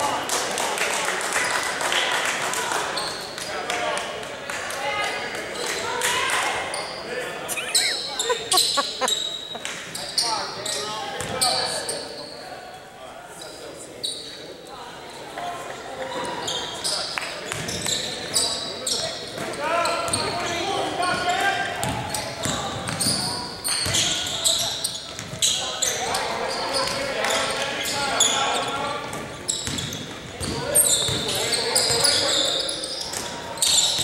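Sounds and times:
players calling out: 7.3s - 11.4s.

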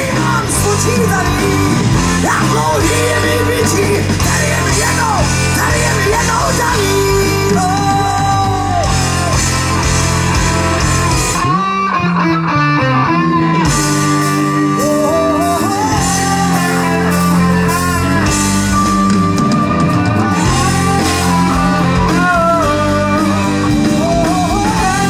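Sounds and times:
drum kit: 0.0s - 11.8s, 13.4s - 25.0s
bass guitar: 0.0s - 25.0s
electric guitar melody: 0.0s - 25.0s.

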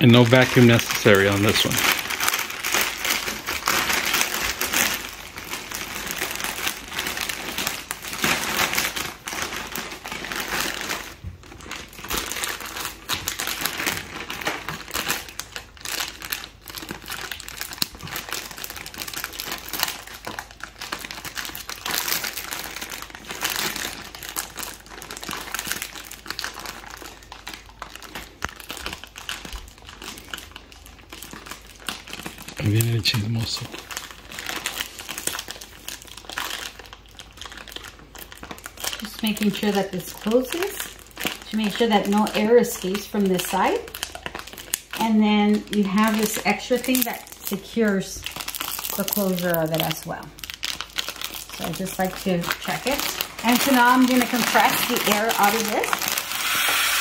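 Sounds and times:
plastic bag crinkling: 0.0s - 57.0s.

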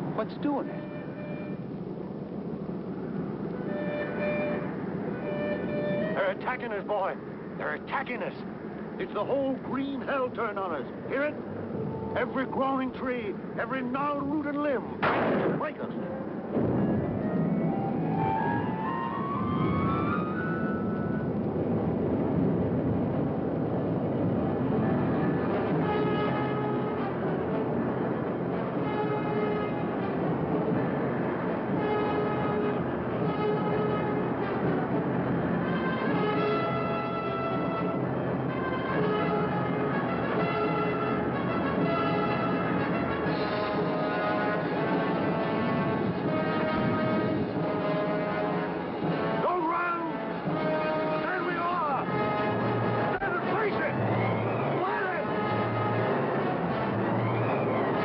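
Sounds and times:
continuous low rumble: 0.0s - 58.0s
held brass notes: 3.3s - 6.9s, 24.5s - 58.0s
rising orchestral glides: 15.7s - 21.7s.

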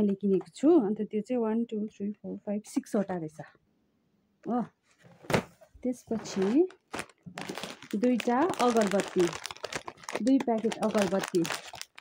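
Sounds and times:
person speaking: 5.8s - 12.0s
plastic packets crinkling: 6.1s - 12.0s.

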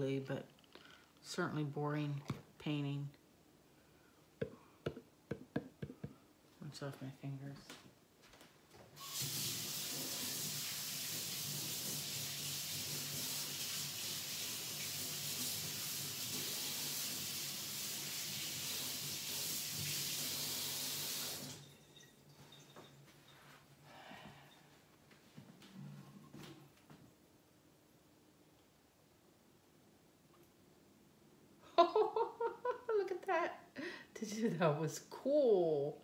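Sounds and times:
faint knocks and handling: 4.4s - 6.2s.

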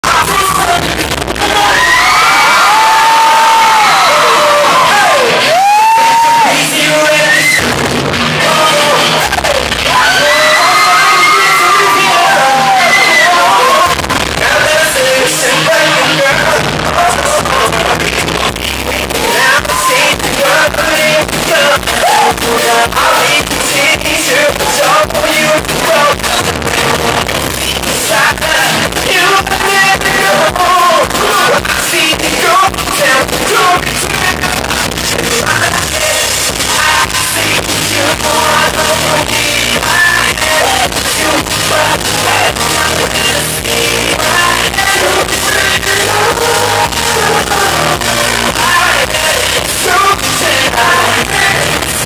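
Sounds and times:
crowd cheering: 0.0s - 27.2s
backing music: 0.0s - 52.0s
steady dance beat: 3.7s - 52.0s.

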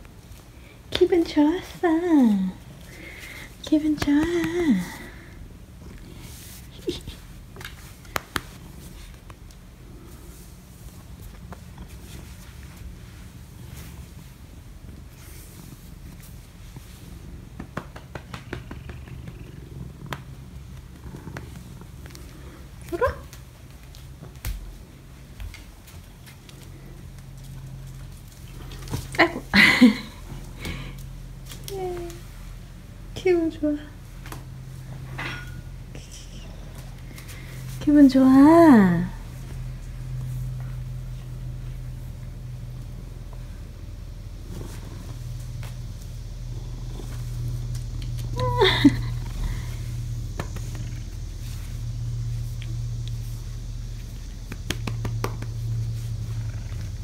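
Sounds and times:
cat purring: 0.6s - 57.0s
rustles: 39.1s - 57.0s.

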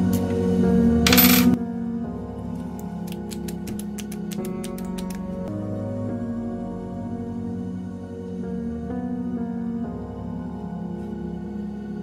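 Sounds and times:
background music: 0.0s - 12.0s
key clattering on tabletop: 1.1s - 1.6s.

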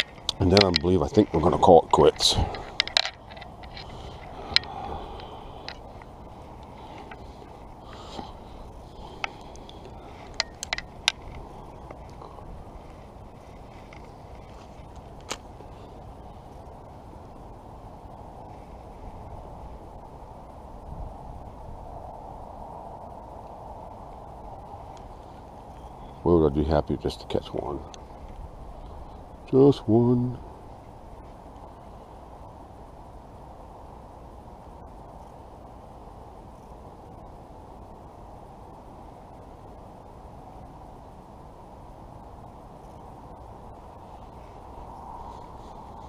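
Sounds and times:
outdoor background hiss: 0.0s - 46.0s.

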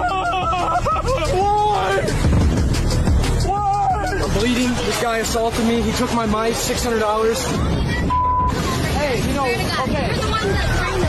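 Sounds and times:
man wailing and yelling: 3.4s - 4.5s.

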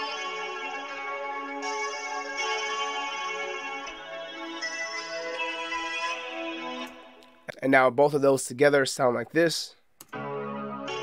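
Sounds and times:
reverberant guitar melody loop: 0.0s - 7.4s, 10.1s - 11.0s.

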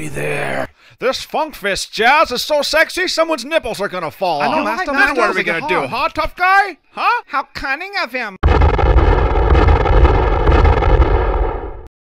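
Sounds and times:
deep rumbling noise: 8.4s - 11.9s.

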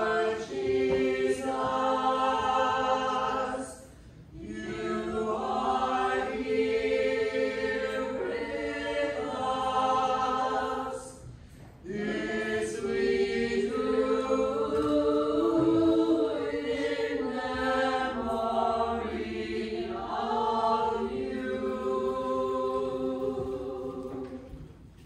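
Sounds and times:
group singing a hymn: 0.0s - 24.9s.

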